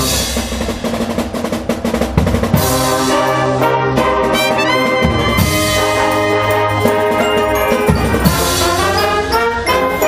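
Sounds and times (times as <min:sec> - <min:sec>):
drum roll: 0:00.0 - 0:10.0
brass held chord: 0:02.9 - 0:10.0.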